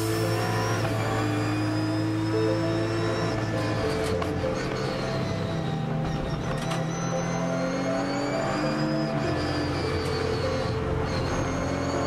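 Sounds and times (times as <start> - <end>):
race car engine accelerating: 0.0 - 12.0.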